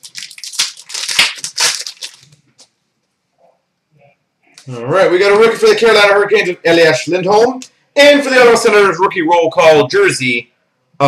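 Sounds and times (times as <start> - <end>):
wrapper crinkling and tearing: 0.0 - 2.6.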